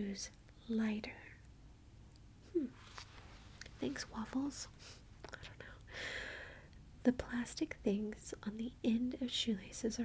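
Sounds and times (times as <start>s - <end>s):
woman breathing softly: 4.7s - 6.8s.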